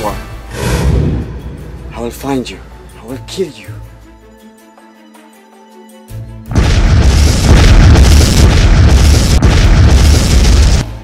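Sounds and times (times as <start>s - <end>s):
deep rumble: 6.5s - 10.8s
loud explosion blast: 6.5s - 10.9s.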